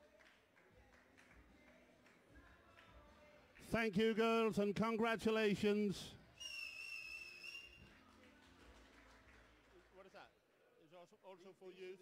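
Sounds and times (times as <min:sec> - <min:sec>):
high steady whistle tone: 0:06.4 - 0:07.9.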